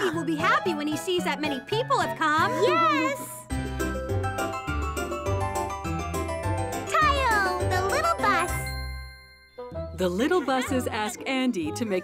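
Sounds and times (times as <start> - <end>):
music: 0.0 - 12.0
cheerful cartoon voices: 2.4 - 3.5, 6.9 - 8.7
tinkling jingle effect: 3.5 - 10.9.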